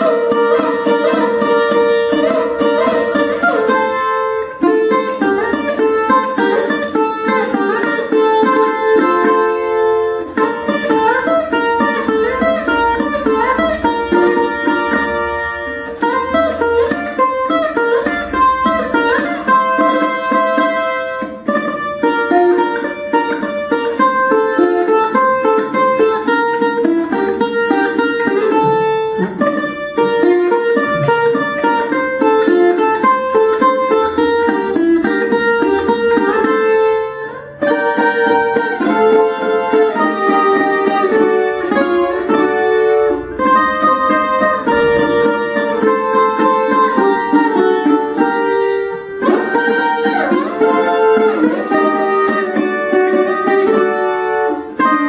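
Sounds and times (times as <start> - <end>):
small guitar picked melody: 0.0 - 55.0.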